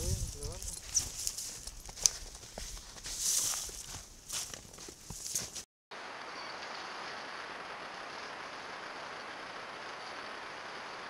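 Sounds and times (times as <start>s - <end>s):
footsteps crunching snow: 0.0s - 5.7s.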